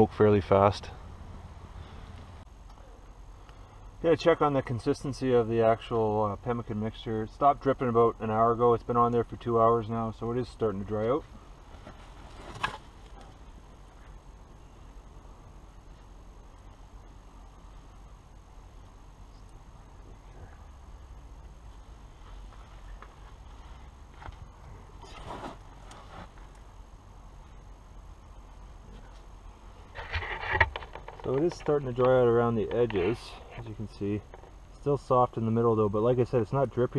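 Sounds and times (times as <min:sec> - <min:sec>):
faint outdoor background: 0:00.0 - 0:36.9
canvas rustling: 0:11.6 - 0:13.4, 0:25.0 - 0:26.5.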